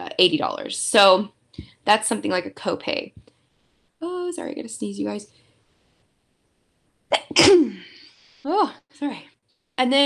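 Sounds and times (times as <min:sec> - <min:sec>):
woman sneezing: 0:07.1 - 0:08.1.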